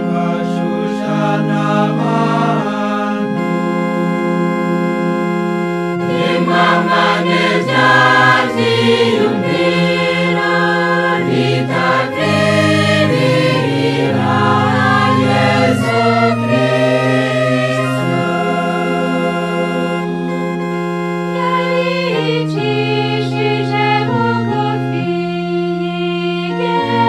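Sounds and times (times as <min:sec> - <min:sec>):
choir singing a hymn: 0:00.0 - 0:05.0, 0:06.0 - 0:27.0
sustained organ chords: 0:00.0 - 0:27.0.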